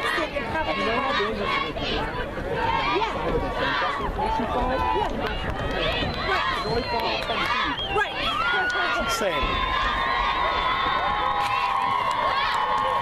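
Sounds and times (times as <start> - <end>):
spectators talking and shouting: 0.0 - 13.0.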